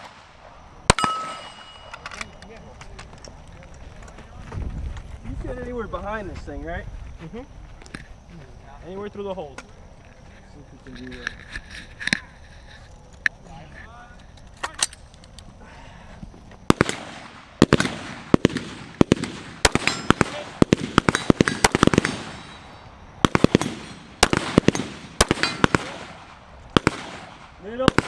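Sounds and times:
rifle gunshots with echo: 0.0 - 2.4, 16.7 - 28.0.

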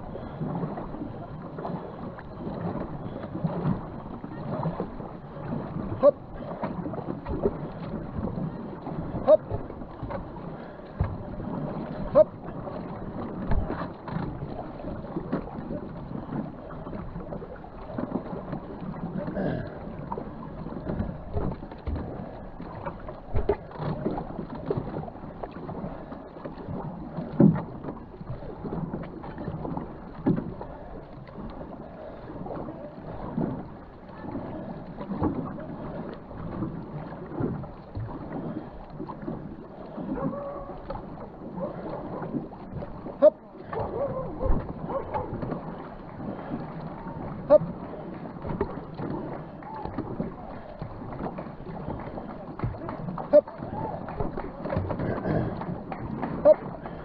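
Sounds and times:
paddle strokes splashing: 0.0 - 57.0
water wash: 0.0 - 57.0.

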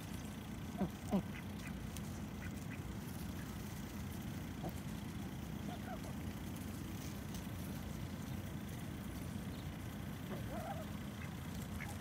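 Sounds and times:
low background rumble: 0.0 - 12.0
ducks quacking: 0.6 - 3.5, 10.3 - 12.0.

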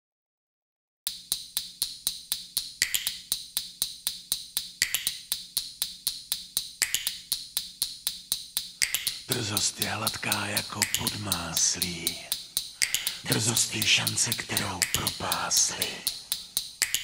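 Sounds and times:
dry percussion clicks: 1.1 - 17.0.

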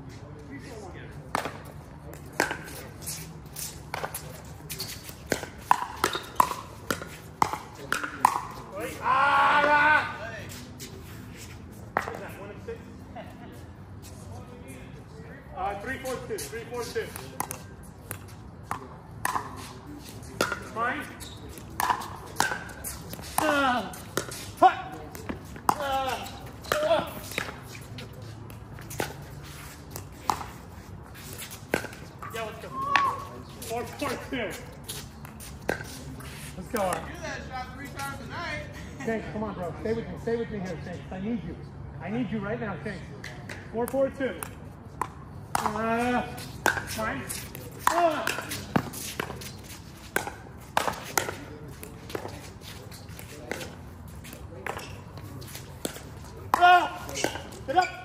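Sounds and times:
players calling out: 8.0 - 10.6, 20.8 - 27.8, 32.2 - 34.6, 56.4 - 58.0
paddles hitting plastic ball: 55.8 - 57.5.

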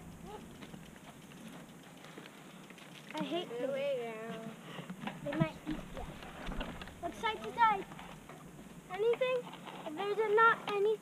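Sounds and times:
steady low hiss: 0.0 - 11.0
children talking and calling out: 0.2 - 0.6, 5.2 - 8.2, 8.8 - 11.0.

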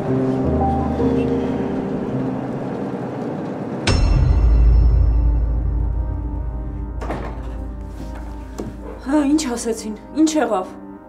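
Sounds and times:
bus engine drone: 0.0 - 6.3.

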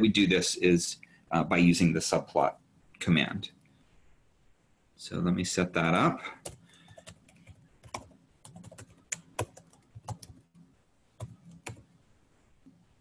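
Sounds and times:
typing on computer keyboard: 6.4 - 10.6, 11.2 - 11.8.

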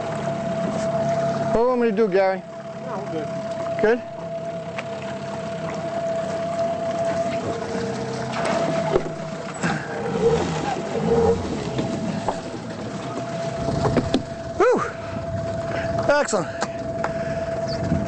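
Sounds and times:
boat motor humming: 0.0 - 18.0.

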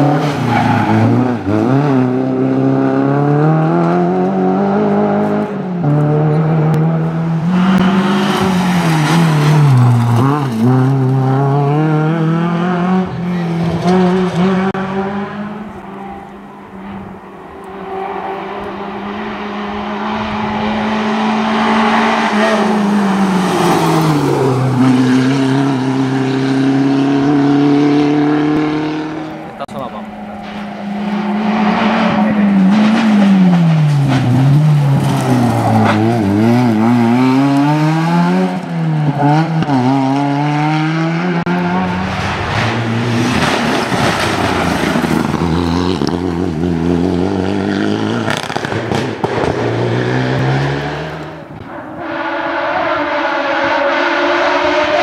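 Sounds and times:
race car engines at high revs: 0.0 - 55.0.

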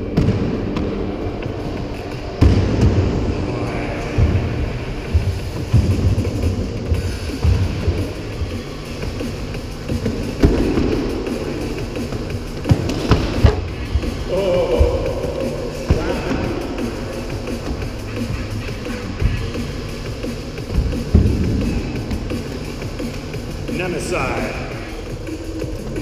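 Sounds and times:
music with heavy low beat: 0.0 - 26.0.

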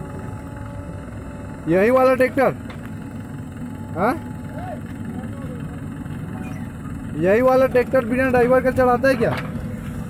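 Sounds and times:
tractor diesel engine idling: 0.0 - 10.0.

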